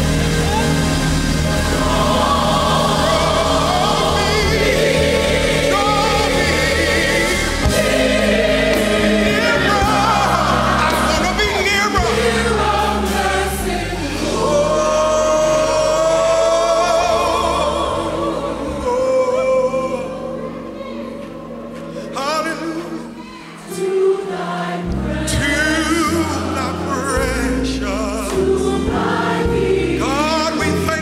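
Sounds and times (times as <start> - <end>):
sustained bass notes: 0.0 - 23.2
gospel choir singing: 0.0 - 31.0
instrumental accompaniment: 0.0 - 31.0.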